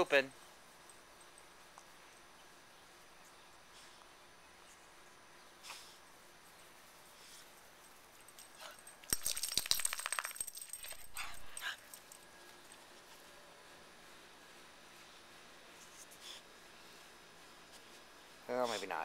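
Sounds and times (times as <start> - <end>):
metal collar tag jingling: 7.8 - 12.3.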